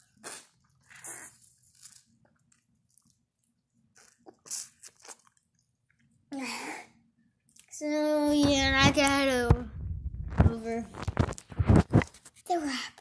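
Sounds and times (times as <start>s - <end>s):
biting and slurping: 0.0s - 3.2s, 3.9s - 6.0s.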